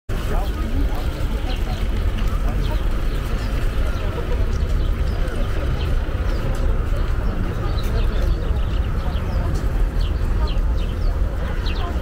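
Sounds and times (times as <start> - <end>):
faint distant voices: 0.1 - 12.0.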